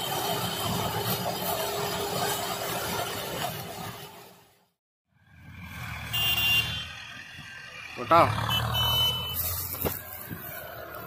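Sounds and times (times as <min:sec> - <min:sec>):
engines rumbling: 0:00.0 - 0:11.0.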